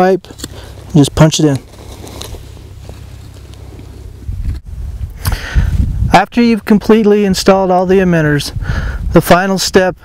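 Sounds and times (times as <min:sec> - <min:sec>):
wind rumbling on microphone: 0:01.6 - 0:09.3.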